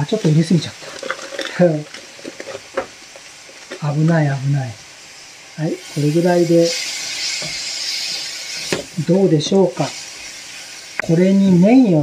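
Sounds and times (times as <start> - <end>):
foil packet rustling: 0.0 - 4.0
food sizzling in a frying pan: 0.0 - 12.0.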